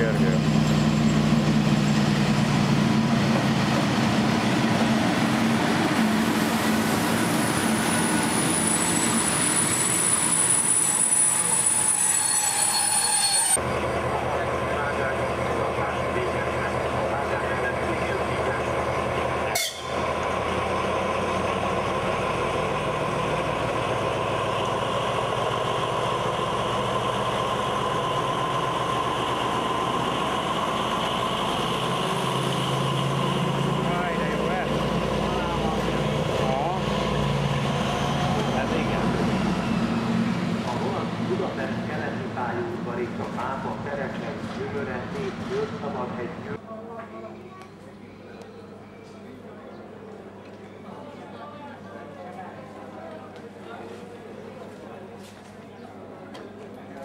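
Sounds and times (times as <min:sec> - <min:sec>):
diesel locomotive passing: 0:00.0 - 0:46.6
train rumbling in: 0:00.0 - 0:46.6.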